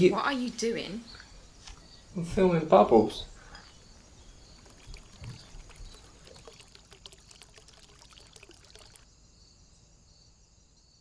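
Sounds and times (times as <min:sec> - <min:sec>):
faint steady hiss: 0:00.0 - 0:11.0
soap lather bubbles popping: 0:04.5 - 0:09.0.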